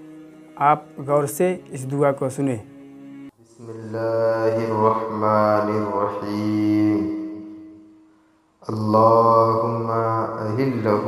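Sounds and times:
person chanting melodic recitation: 0:03.4 - 0:08.0, 0:08.6 - 0:11.0.

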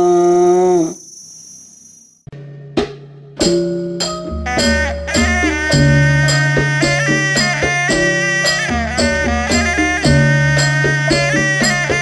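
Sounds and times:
high steady ringing chime: 0:00.9 - 0:02.3.

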